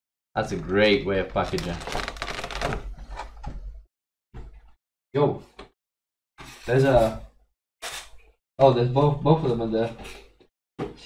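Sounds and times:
plastic packaging crackling: 1.3 - 3.0.

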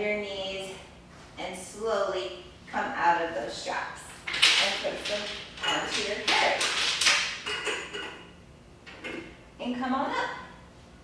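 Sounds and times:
woman speaking: 0.0 - 6.6, 9.6 - 10.6.

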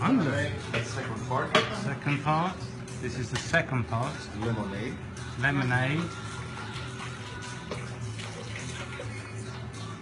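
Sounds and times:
background music: 0.0 - 10.0
liquid pouring from bottle: 6.9 - 9.3.

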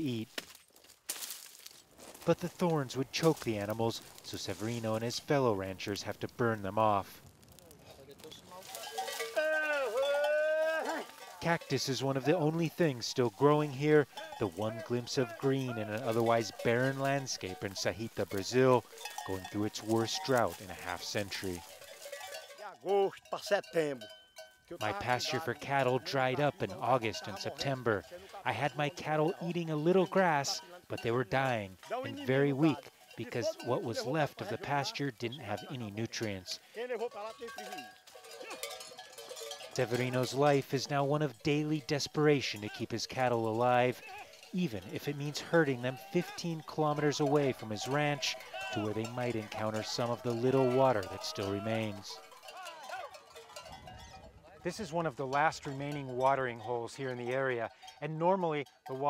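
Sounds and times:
cattle bells ringing: 2.0 - 59.0.

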